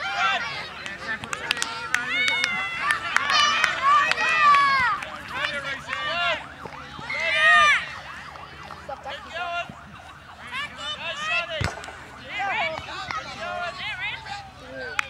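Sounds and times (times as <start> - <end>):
voices shouting and calling out: 0.0 - 15.0.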